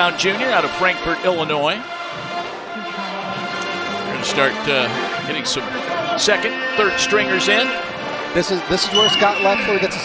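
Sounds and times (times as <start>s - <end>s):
brass band music: 0.0s - 10.0s.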